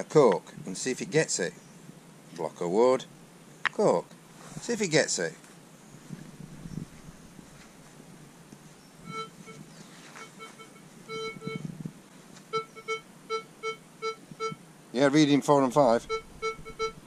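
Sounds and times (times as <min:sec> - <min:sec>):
metal detector short beeps: 0:09.1 - 0:09.6, 0:10.2 - 0:11.7, 0:12.5 - 0:14.6, 0:16.0 - 0:17.0.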